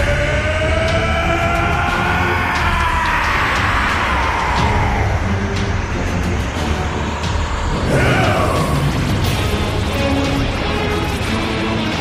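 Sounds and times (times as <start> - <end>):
heavy low rumble: 0.0 - 11.9.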